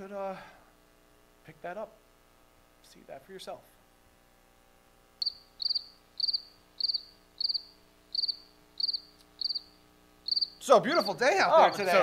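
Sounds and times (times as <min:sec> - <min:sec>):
cricket chirping: 0:05.2 - 0:11.2.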